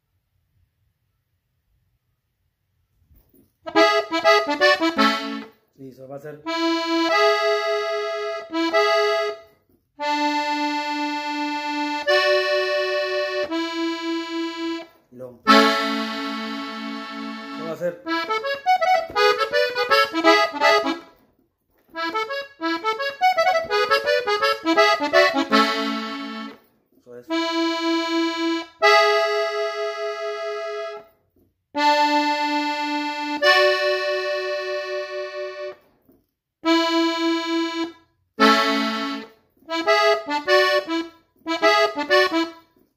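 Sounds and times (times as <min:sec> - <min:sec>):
button accordion playing: 0:03.7 - 0:05.6, 0:06.4 - 0:36.0, 0:36.6 - 0:42.9.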